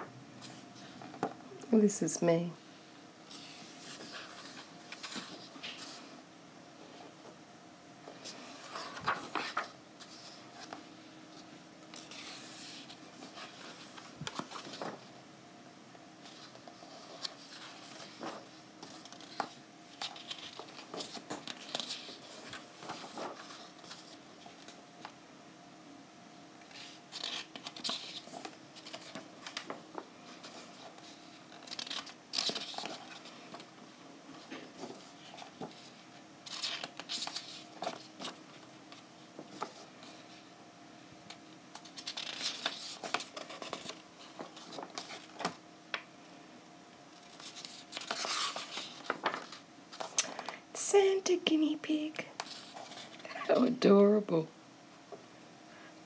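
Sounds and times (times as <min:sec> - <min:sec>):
paper pages rustling: 0:03.3 - 0:06.1, 0:08.1 - 0:15.1, 0:16.2 - 0:25.2, 0:26.6 - 0:33.7, 0:34.3 - 0:40.4, 0:41.3 - 0:46.0, 0:47.1 - 0:50.6, 0:52.4 - 0:53.3.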